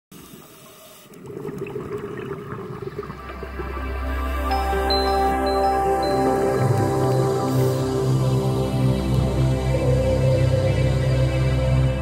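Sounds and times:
dull underwater rushing water: 0.1s - 12.0s
low music drone: 2.9s - 12.0s.

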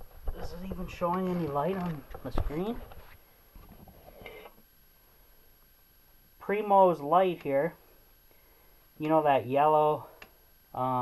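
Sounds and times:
camera handling rumble: 0.0s - 4.6s.

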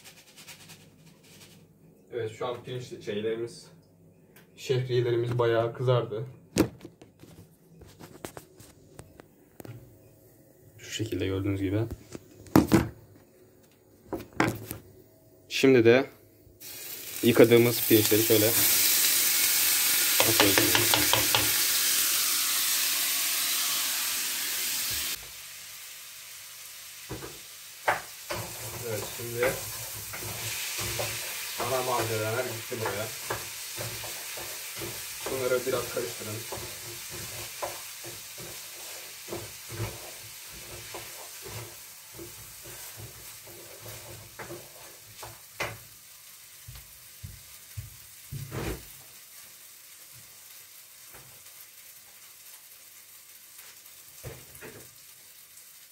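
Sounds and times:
rice sizzling in hot oil: 16.6s - 55.9s
spoon stirring against pan: 20.2s - 21.7s, 27.8s - 45.8s.

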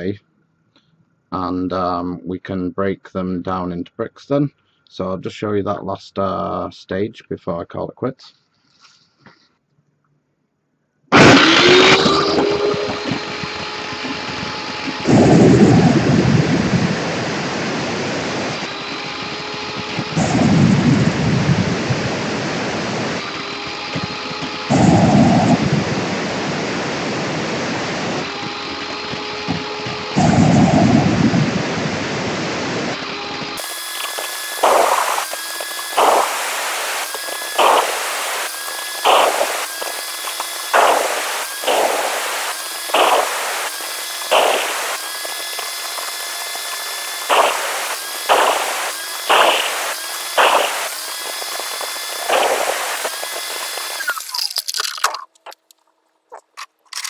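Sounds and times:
wet tile saw cutting brick: 11.1s - 16.5s, 18.3s - 26.0s, 28.0s - 31.3s, 32.9s - 55.3s.

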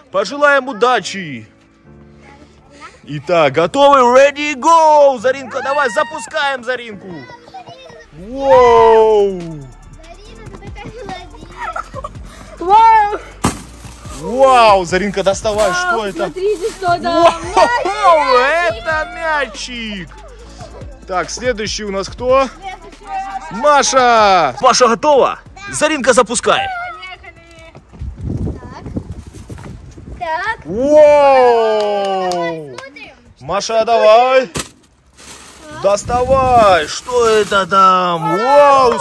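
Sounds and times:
background music: 0.0s - 28.8s, 30.6s - 39.0s
children shouting excitedly: 4.7s - 13.3s, 15.6s - 21.1s, 22.4s - 24.6s, 25.5s - 27.4s, 30.2s - 33.2s, 38.1s - 39.0s.

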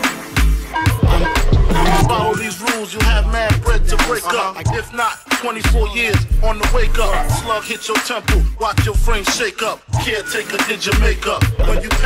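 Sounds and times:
hip hop beat with deep bass: 0.0s - 12.0s
person rapping: 1.0s - 12.0s.

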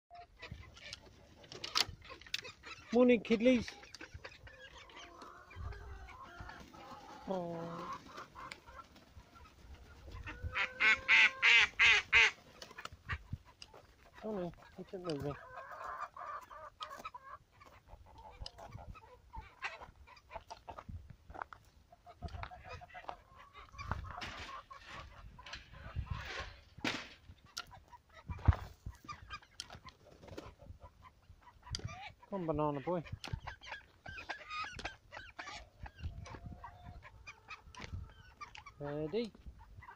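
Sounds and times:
young ducks quacking and peeping: 0.1s - 39.9s.

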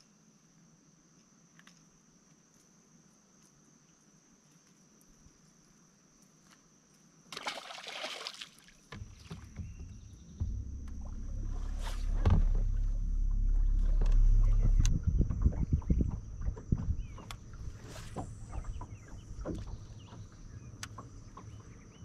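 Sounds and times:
water around a boat: 3.4s - 22.0s
splashy rush: 7.4s - 8.7s
low rumble: 9.0s - 22.0s
wind noise: 9.0s - 22.0s.

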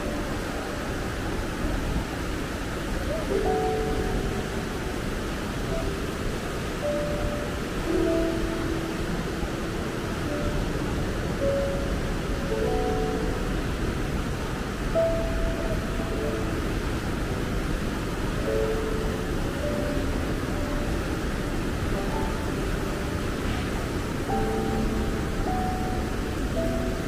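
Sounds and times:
slow piano music: 0.0s - 27.0s
water rushing over weir: 0.0s - 27.0s.

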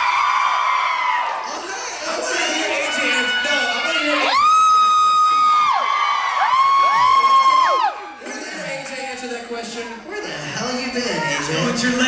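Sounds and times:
crowd cheering: 0.0s - 9.0s.

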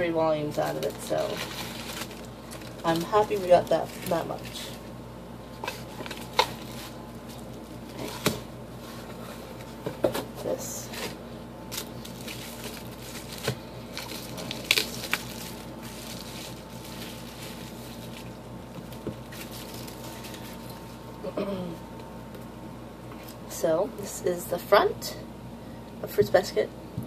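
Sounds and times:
bubble wrap crinkling: 0.4s - 9.8s, 10.8s - 21.2s.

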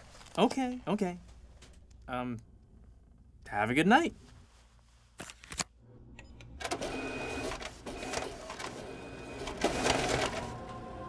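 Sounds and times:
photocopier high whine: 6.2s - 11.0s
photocopier rattling: 6.6s - 10.7s.

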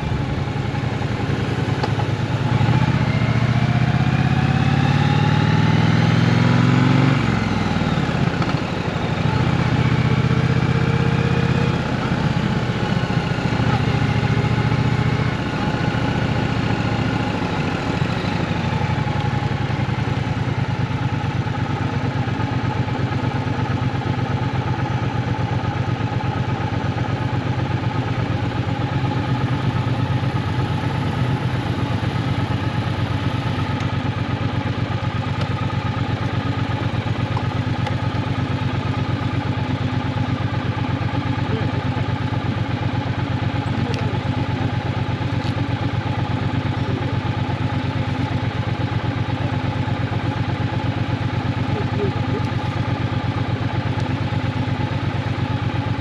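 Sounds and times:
motorcycle engine running steadily: 0.0s - 56.0s.

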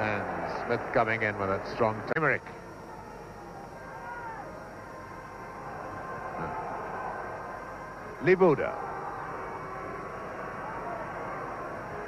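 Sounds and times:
stadium crowd noise: 0.0s - 12.0s
faint shouts: 2.4s - 7.7s.

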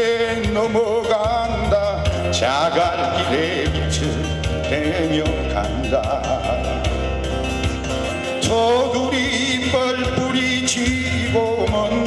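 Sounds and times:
man singing into microphone: 0.0s - 7.2s, 8.3s - 12.0s
acoustic guitar strumming: 0.0s - 12.0s.

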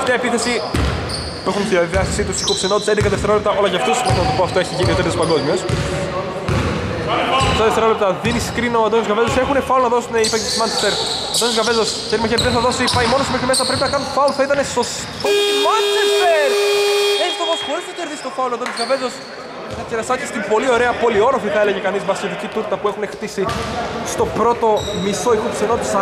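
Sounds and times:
ball bouncing on wooden court: 0.7s - 1.1s, 5.7s - 5.9s, 6.5s - 6.8s
voices: 10.1s - 22.8s
scoreboard horn tone: 15.2s - 18.0s.

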